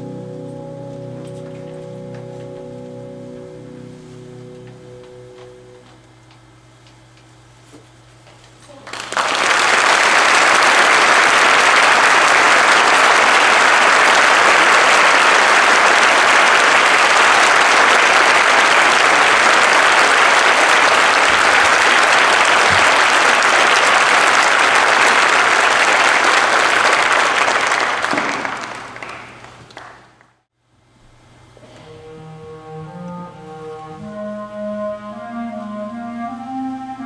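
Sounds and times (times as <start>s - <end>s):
audience applauding: 8.7s - 30.4s.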